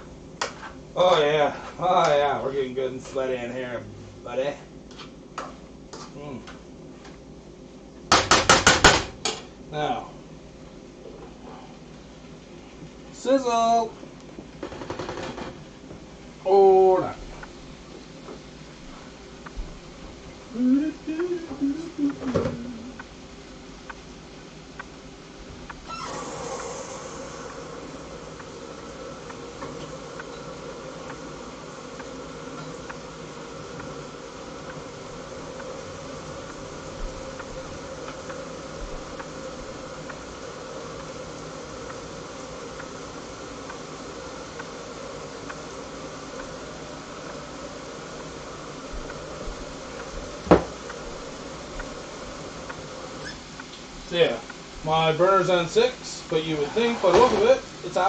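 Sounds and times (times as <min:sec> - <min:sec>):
food sizzling in pans: 0:21.2 - 0:58.0.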